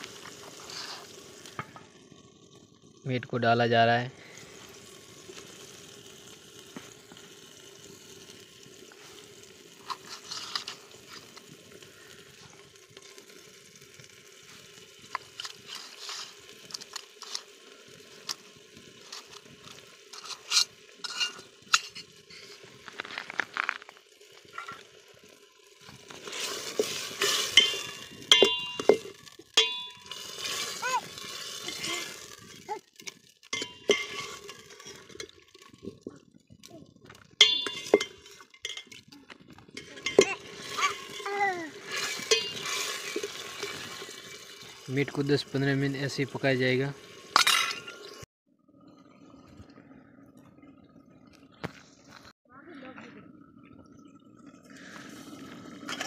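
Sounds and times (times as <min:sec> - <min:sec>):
curry simmering sizzle: 0:00.0 - 0:52.4, 0:53.2 - 0:56.0
metal ladle clinking and scraping pot: 0:09.8 - 0:11.5, 0:19.1 - 0:22.7, 0:26.2 - 0:36.0, 0:37.4 - 0:39.1, 0:39.7 - 0:44.7, 0:47.3 - 0:48.2.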